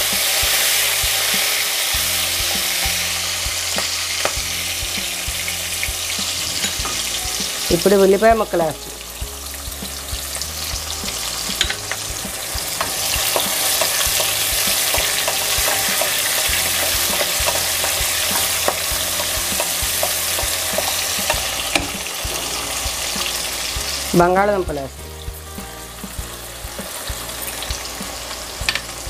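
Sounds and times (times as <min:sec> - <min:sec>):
onions sizzling in hot oil: 0:00.0 - 0:29.0
spatula scraping a pan: 0:08.9 - 0:24.1.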